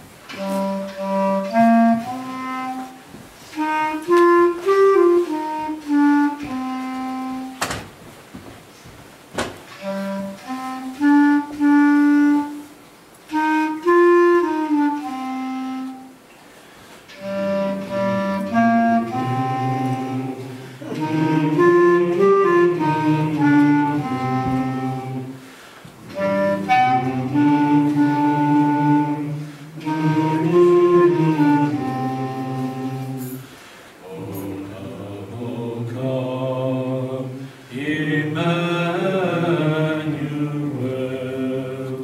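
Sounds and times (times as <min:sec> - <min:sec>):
men singing in unison: 0:19.0 - 0:25.4, 0:34.0 - 0:42.0.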